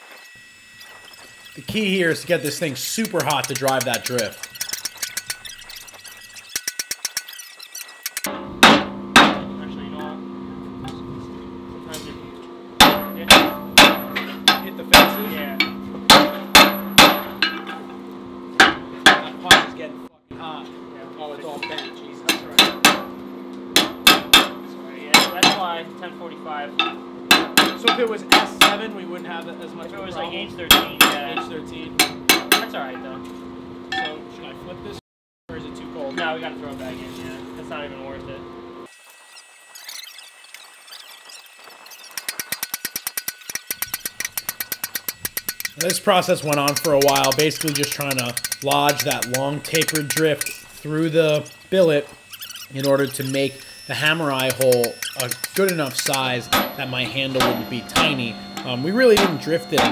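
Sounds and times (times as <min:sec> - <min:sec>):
steady hum: 0:00.2 - 0:06.3, 0:08.1 - 0:42.6, 0:43.6 - 0:59.9
hammer striking hot steel: 0:01.7 - 0:05.5, 0:08.2 - 0:09.6, 0:12.8 - 0:18.0, 0:18.6 - 0:19.8, 0:21.6 - 0:25.7, 0:26.8 - 0:28.9, 0:30.7 - 0:32.8, 0:42.2 - 0:52.2, 0:52.8 - 0:59.9.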